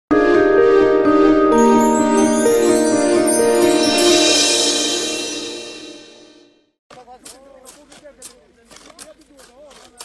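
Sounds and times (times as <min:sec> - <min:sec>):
intro jingle: 0:01.6 - 0:06.6.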